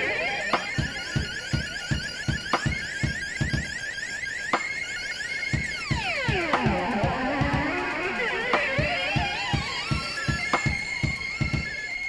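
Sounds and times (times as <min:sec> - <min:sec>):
synthesizer alarm-like sequence: 0:00.0 - 0:12.0.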